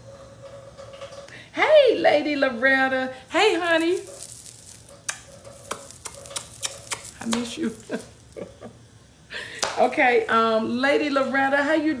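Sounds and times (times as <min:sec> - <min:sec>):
lip-smacking kiss sounds: 0:05.1 - 0:07.6.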